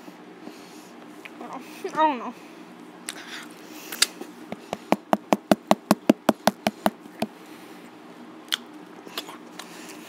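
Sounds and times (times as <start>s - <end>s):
sharp taps: 4.5s - 7.3s.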